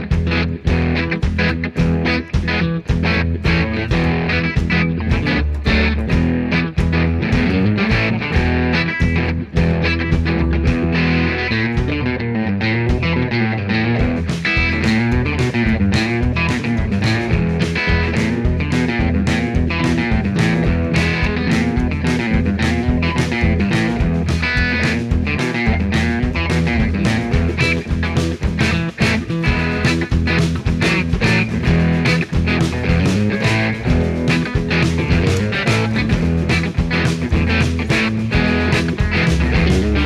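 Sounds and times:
steady drum beat: 0.0 - 12.1, 13.8 - 40.0
rock music: 0.0 - 40.0.

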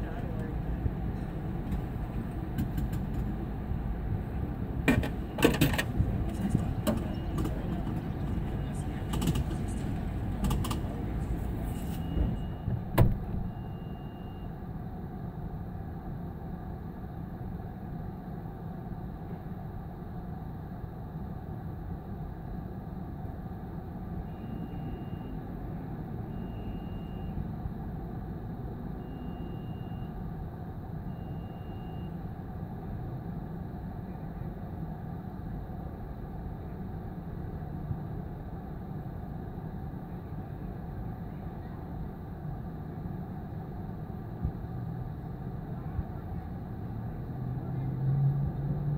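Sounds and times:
vehicle engine rumble: 0.0 - 48.9
short high-pitched beep: 13.4 - 14.6, 26.3 - 27.4, 29.0 - 30.2, 31.1 - 32.2.

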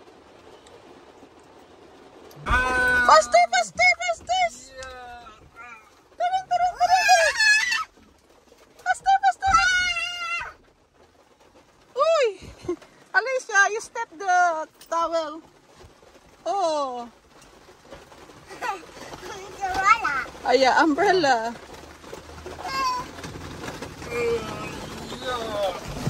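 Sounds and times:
toddler squealing and crying: 6.8 - 7.9.

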